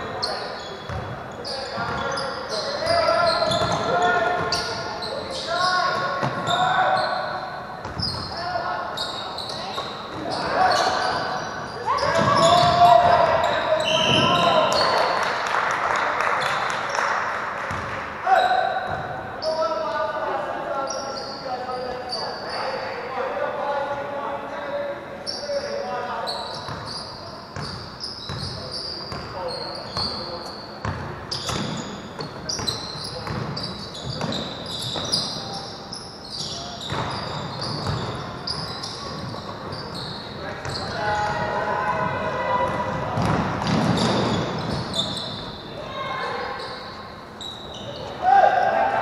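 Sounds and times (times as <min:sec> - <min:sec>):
sneaker squeaks: 0:00.0 - 0:15.2, 0:20.7 - 0:23.1, 0:25.2 - 0:41.6, 0:42.3 - 0:48.4
basketball bouncing on hardwood: 0:37.8 - 0:38.1.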